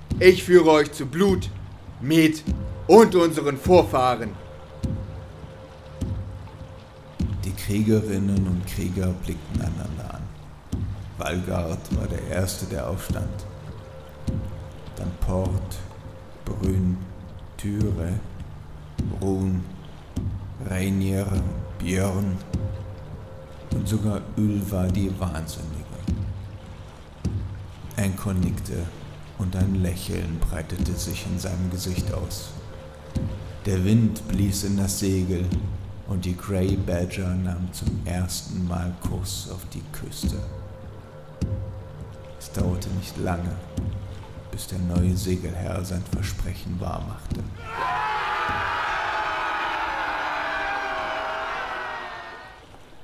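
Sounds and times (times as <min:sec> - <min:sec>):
wooden ship creaking: 0:00.0 - 0:37.0, 0:42.5 - 0:53.0
crowd shouting a held cry: 0:47.6 - 0:52.6.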